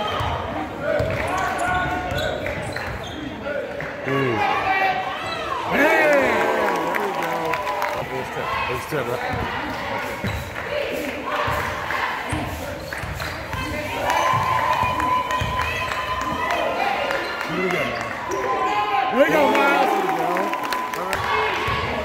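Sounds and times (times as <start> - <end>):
voices of players and spectators: 0.0 - 22.0.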